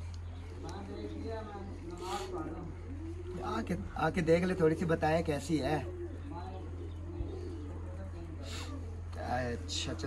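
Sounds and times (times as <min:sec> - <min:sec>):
bird cooing: 0:00.4 - 0:10.0.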